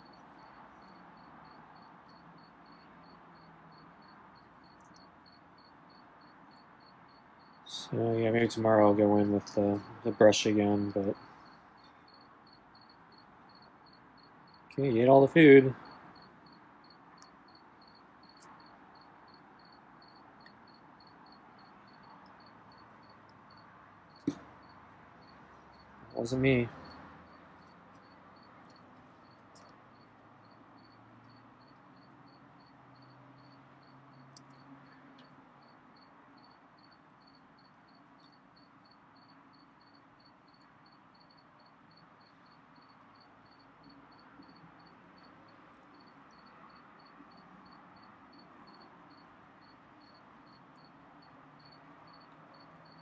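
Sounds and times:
insect chirping: 0:00.0 - 0:53.0.

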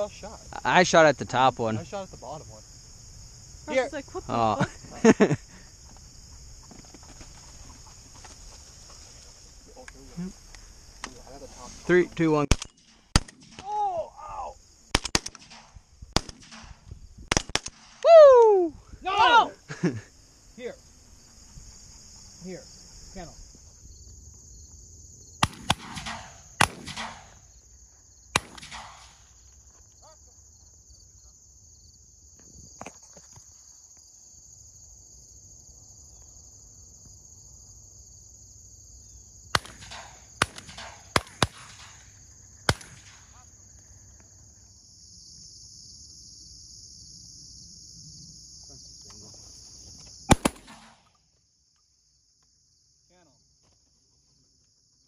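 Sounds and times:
insects chirping: 0:00.0 - 0:55.0
people laughing: 0:04.4 - 0:05.7, 0:19.5 - 0:20.1
shotgun shots: 0:12.4 - 0:13.7, 0:14.9 - 0:18.0, 0:25.4 - 0:27.4, 0:28.3 - 0:29.3, 0:39.5 - 0:42.1, 0:42.7 - 0:43.4, 0:50.3 - 0:51.1.

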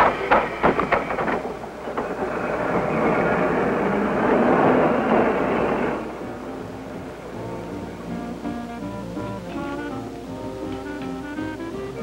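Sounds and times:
streetcar rumbling past: 0:00.0 - 0:12.0.

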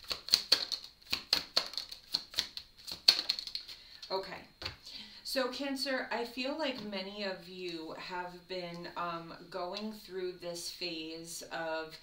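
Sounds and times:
cards being shuffled: 0:00.0 - 0:04.8.

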